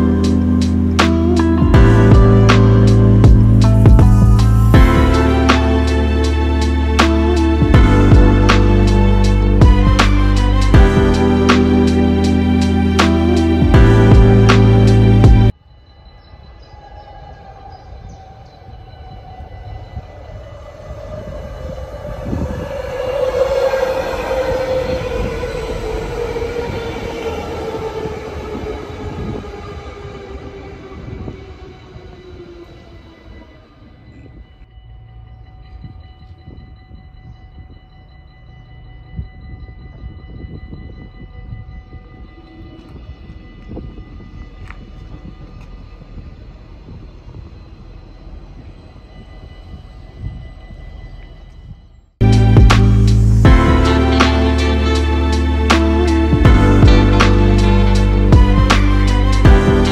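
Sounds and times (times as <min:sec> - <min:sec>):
train braking with whine: 0:00.0 - 0:59.9
train running noise: 0:00.0 - 0:59.9.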